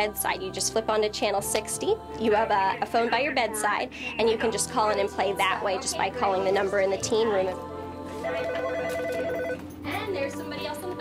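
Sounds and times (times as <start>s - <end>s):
electronic telephone ringing: 8.2s - 9.7s.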